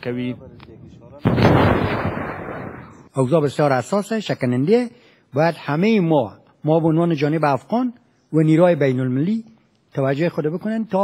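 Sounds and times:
heavy weapon shot: 0:01.2 - 0:02.9.

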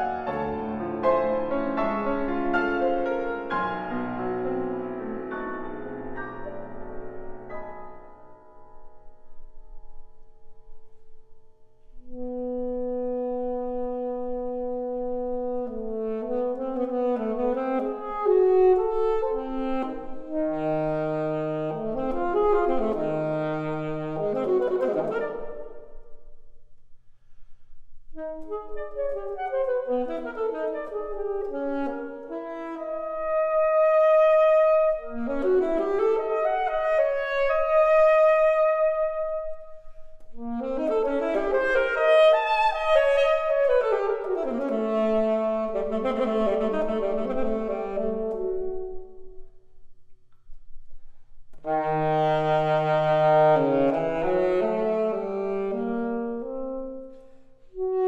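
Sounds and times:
grand piano: 0:00.0 - 0:58.0
alto saxophone: 0:12.0 - 0:26.4, 0:28.0 - 0:49.8, 0:51.5 - 0:58.0.

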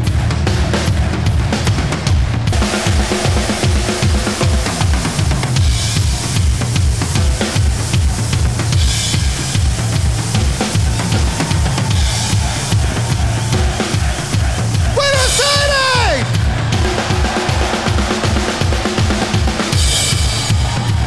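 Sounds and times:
bass drum beats: 0:00.0 - 0:21.0
snare and cymbal hits: 0:00.0 - 0:21.0.

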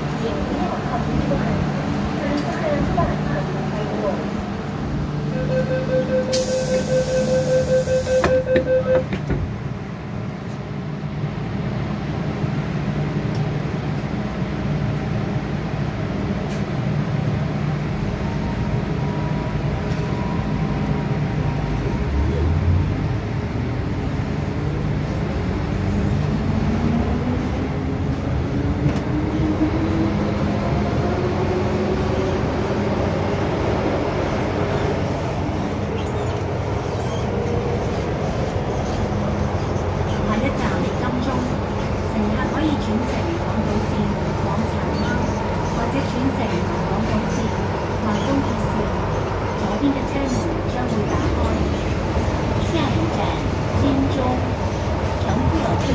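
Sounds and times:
train rumble: 0:00.0 - 0:55.9
rapid warning beeps: 0:05.4 - 0:09.1
air hiss: 0:06.3 - 0:07.5
train doors shutting thud: 0:08.0 - 0:09.6.

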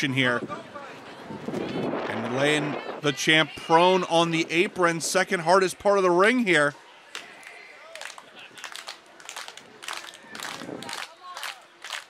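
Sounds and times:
crowd voices and calls: 0:00.0 - 0:12.0.

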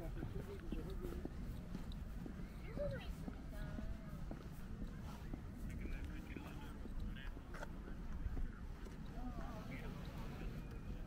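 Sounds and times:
faint voices: 0:00.0 - 0:11.0
footsteps on a path: 0:00.0 - 0:11.0.

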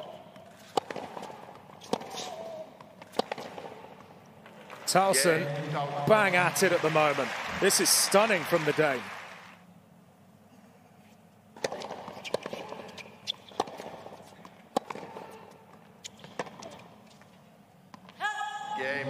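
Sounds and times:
tennis racket hitting ball: 0:00.0 - 0:04.8, 0:11.6 - 0:16.8
tennis ball bouncing: 0:00.0 - 0:04.9, 0:11.6 - 0:18.2.

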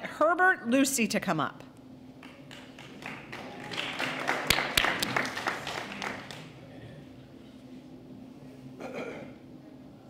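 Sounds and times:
audience applause: 0:02.2 - 0:06.6.

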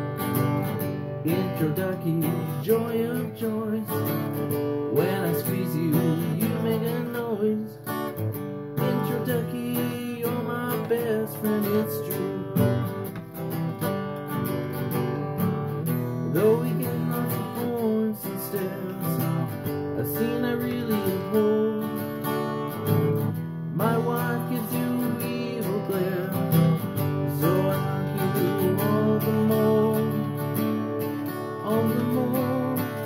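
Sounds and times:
acoustic guitar strumming: 0:00.0 - 0:33.0
man singing: 0:01.2 - 0:13.0, 0:15.9 - 0:33.0.

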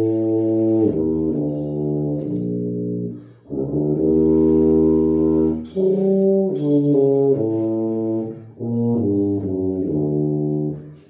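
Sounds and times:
tuba playing low notes: 0:00.0 - 0:11.0.

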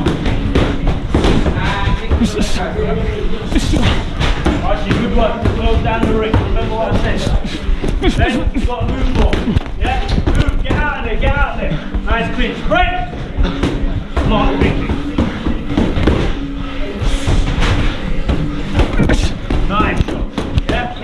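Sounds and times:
music: 0:00.0 - 0:21.0
voices: 0:00.0 - 0:21.0.

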